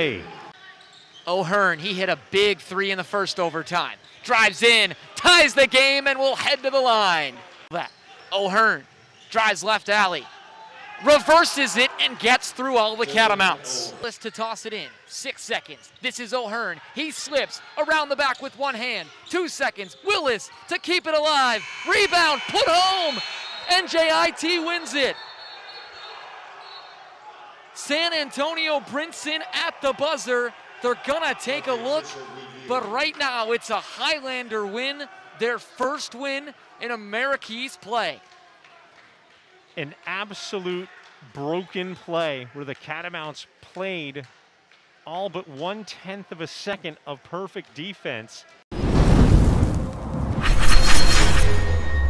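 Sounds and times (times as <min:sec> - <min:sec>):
players shouting and celebrating: 0:04.3 - 0:08.6, 0:09.6 - 0:39.0
deep boom with rumble: 0:48.8 - 0:50.4
bright crackling burst: 0:48.8 - 0:52.0.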